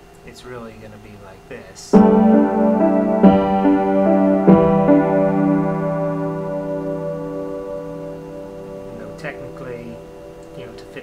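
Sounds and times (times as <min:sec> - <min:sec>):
piano chords: 0:01.9 - 0:11.0.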